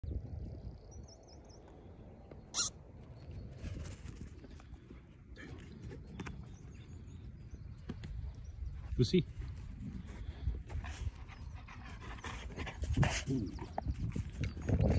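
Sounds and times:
wind rumbling on microphone: 0.0s - 14.9s
small bird twittering: 2.5s - 2.7s.

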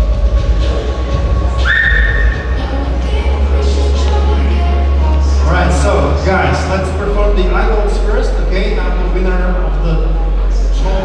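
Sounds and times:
heavy bass background music: 0.0s - 11.0s
shrill whistle from audience: 1.6s - 2.6s.

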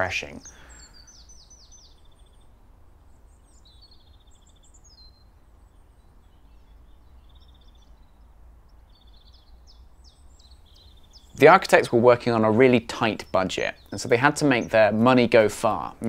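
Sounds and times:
low steady hum: 0.0s - 16.0s
songbird chirps and trills: 0.0s - 16.0s.

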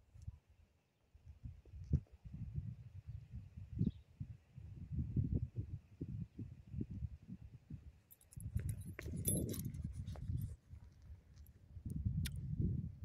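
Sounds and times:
metal dog tags jingling: 8.1s - 10.2s.

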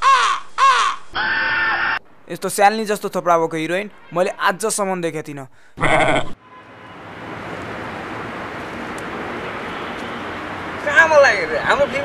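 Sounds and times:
crow cawing: 0.0s - 2.0s.

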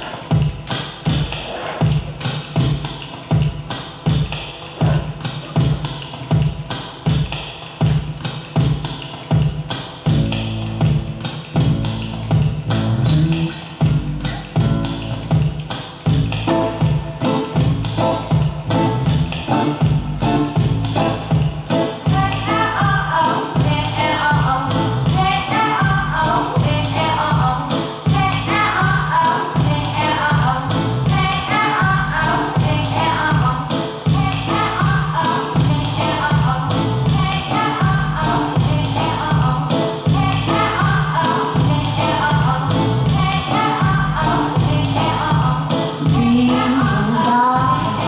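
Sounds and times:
electronic music with steady beat: 0.0s - 48.0s
live instrumental band music: 10.1s - 25.7s.

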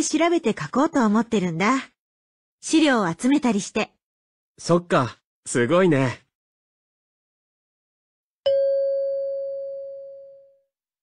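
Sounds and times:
chime tone ringing: 8.5s - 10.6s.

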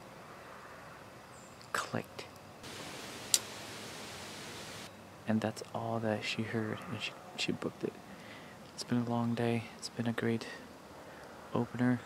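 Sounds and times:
steady hiss: 2.6s - 4.9s.

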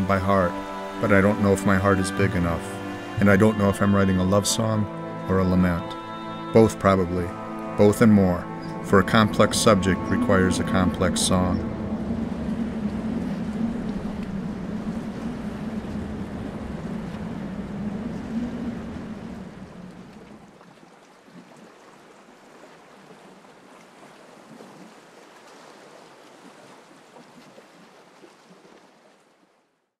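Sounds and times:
steady rushing ambient noise: 0.0s - 20.2s
low hum: 0.0s - 20.5s.

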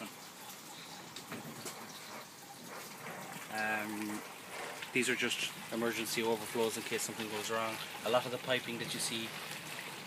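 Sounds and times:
water trickling into grow bed: 0.0s - 10.0s.

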